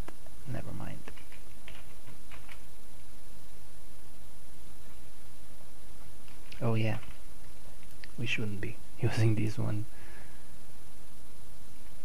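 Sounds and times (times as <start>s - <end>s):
steady low hum: 0.0s - 12.0s
mouse and keyboard clicks: 1.0s - 2.7s.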